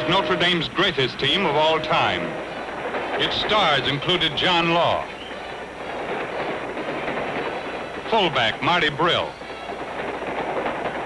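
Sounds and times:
steam locomotive running: 0.0 - 11.0.

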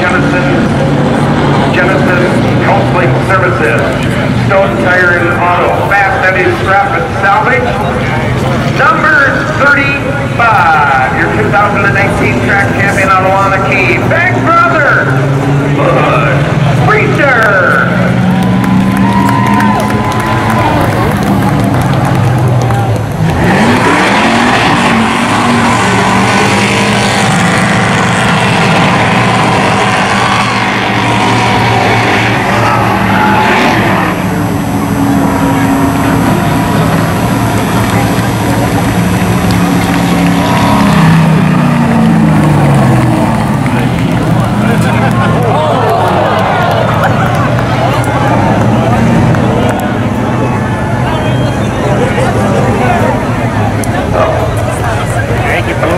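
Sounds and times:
race car engine revving: 0.0 - 55.9.

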